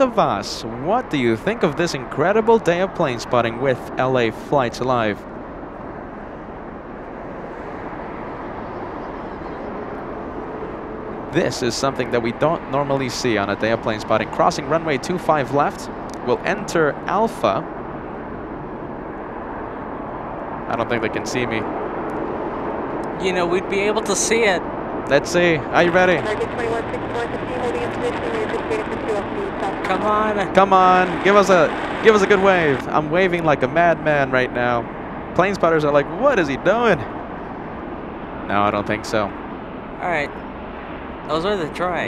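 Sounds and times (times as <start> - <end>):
jet engines running: 0.0 - 41.8
faint steady whine: 0.0 - 41.9
faint indistinct voices: 11.4 - 17.6.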